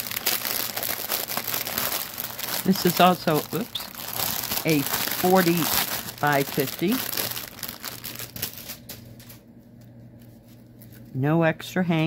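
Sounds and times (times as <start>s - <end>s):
plastic bag crinkling: 0.0s - 9.4s.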